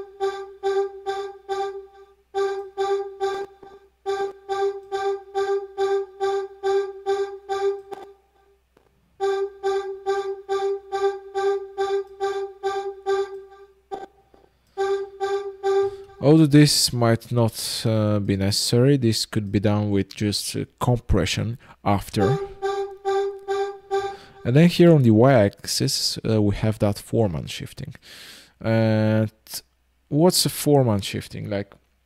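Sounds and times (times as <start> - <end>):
synth vocal sample notes: 0.0 - 8.2, 9.2 - 17.0, 22.2 - 25.1.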